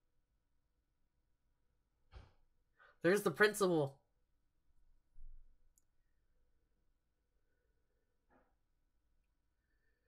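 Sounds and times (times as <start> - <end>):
person speaking: 3.0 - 4.0.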